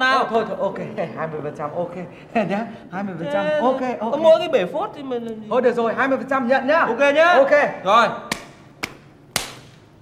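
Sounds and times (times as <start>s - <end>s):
hands slapping palms: 8.3s - 9.9s.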